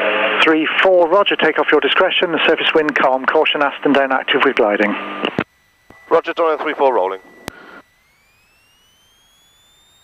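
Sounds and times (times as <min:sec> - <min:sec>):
faint electrical whine rising: 0:00.0 - 0:10.0.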